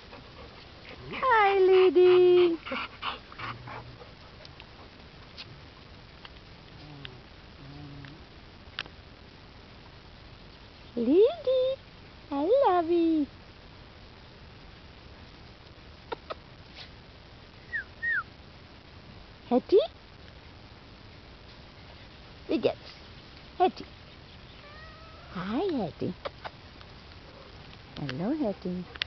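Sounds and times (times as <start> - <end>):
dog panting: 0.0 - 5.0
faint ticks: 2.9 - 9.0, 20.0 - 29.0
dog whining: 24.4 - 25.4.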